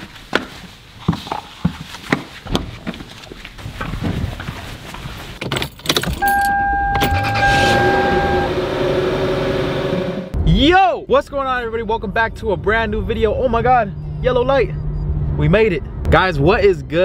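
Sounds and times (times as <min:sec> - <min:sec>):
keys jangling: 0:05.4 - 0:07.2
car engine starting and idling: 0:06.2 - 0:10.4
steady high tone: 0:06.2 - 0:10.4.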